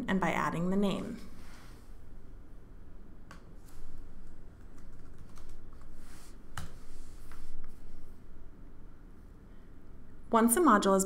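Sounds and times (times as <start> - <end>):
computer keyboard keystrokes: 4.6 - 5.9.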